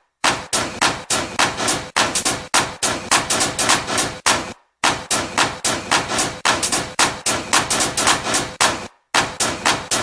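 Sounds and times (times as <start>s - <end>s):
sharp crashing percussion hits: 0.2s - 10.0s.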